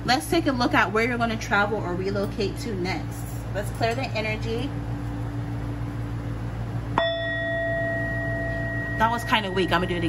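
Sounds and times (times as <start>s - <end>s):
singing bowl ringing: 7.0s - 10.0s.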